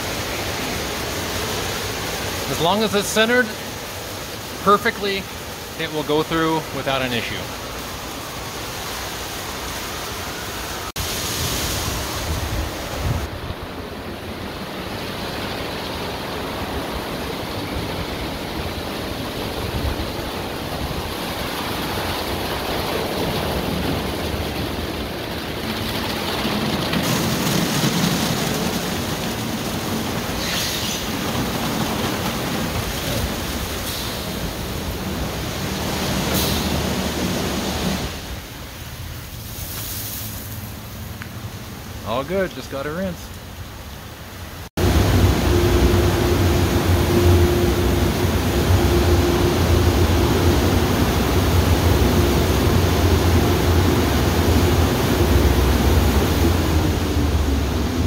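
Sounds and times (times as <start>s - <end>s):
car wash brushes and water spray: 0.0s - 58.0s.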